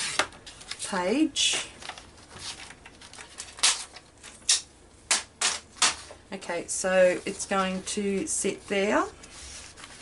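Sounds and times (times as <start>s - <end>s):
paper rustling and scraping: 1.8s - 4.4s, 7.0s - 10.0s.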